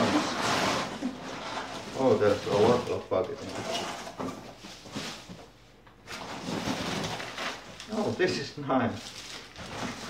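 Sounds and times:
packing paper rustling: 0.0s - 10.0s.

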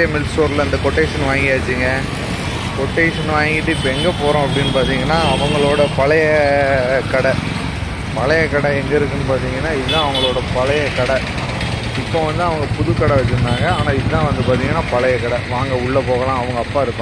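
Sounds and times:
man talking: 0.0s - 2.2s, 2.8s - 7.4s, 8.1s - 11.3s, 12.0s - 17.0s
low hum of street traffic: 0.0s - 17.0s.

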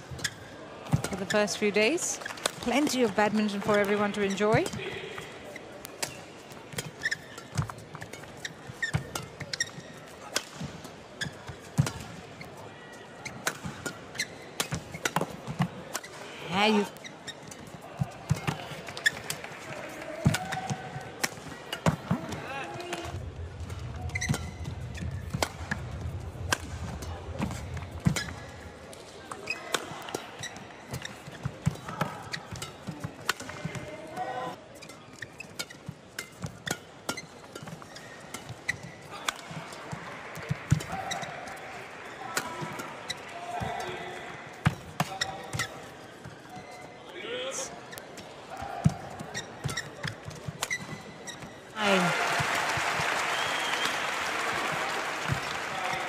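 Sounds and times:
shoes squeaking on court: 0.0s - 52.4s
rackets striking shuttlecock: 26.4s - 28.4s.

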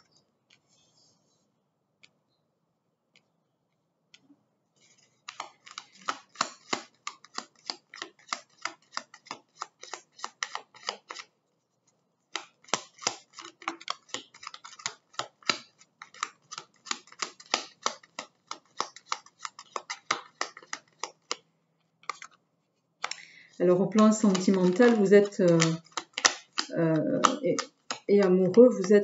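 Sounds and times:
cards being shuffled by hand: 4.8s - 29.0s.

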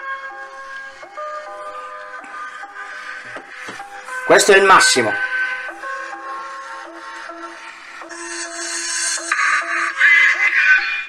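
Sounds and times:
tinny music from phone speaker: 0.0s - 11.0s.

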